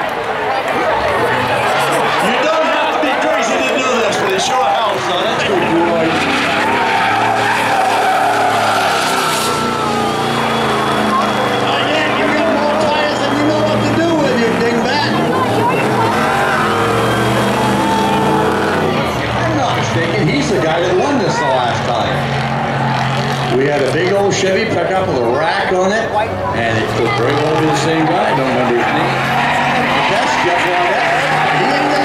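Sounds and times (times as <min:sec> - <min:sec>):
truck engine revving: 0:00.0 - 0:32.0
tyres squealing and skidding: 0:00.0 - 0:32.0.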